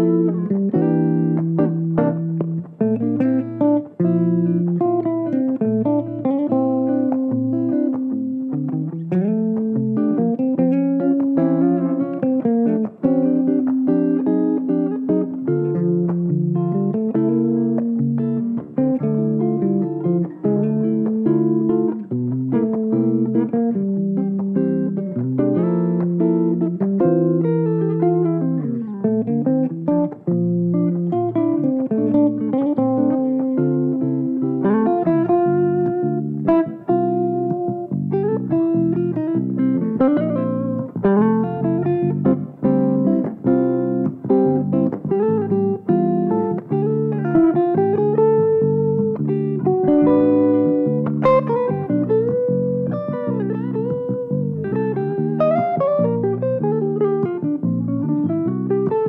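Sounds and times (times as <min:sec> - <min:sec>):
electric guitar solo: 0:00.0 - 0:59.0.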